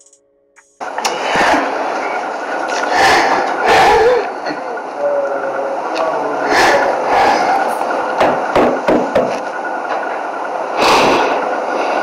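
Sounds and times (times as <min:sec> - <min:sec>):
faint tones: 0:00.0 - 0:08.9
hissy news clip audio: 0:00.8 - 0:12.0.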